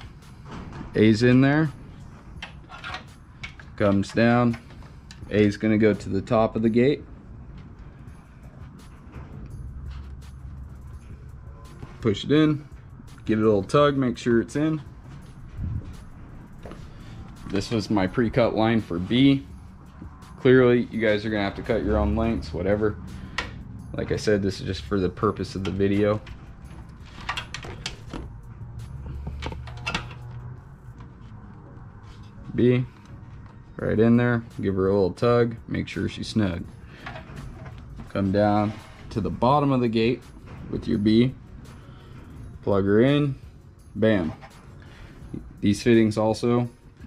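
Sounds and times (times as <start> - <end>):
low steady hum: 0.0 - 47.0.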